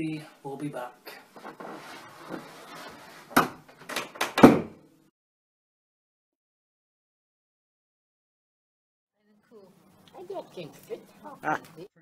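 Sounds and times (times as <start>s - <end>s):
wooden door shutting: 3.4s - 4.8s.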